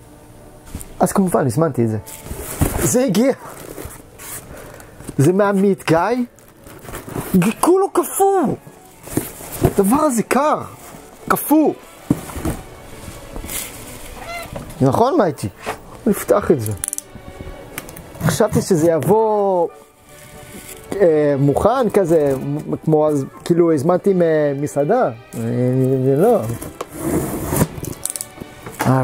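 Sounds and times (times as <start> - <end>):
cat meowing: 14.2 - 14.6
box cutter scraping cardboard: 26.5 - 27.8.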